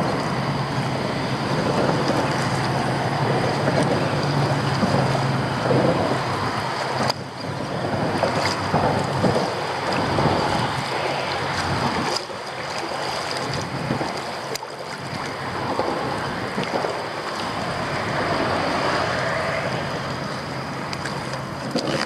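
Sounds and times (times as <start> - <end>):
waves lapping against hull: 0.0 - 22.0
wind buffeting microphone: 0.0 - 22.0.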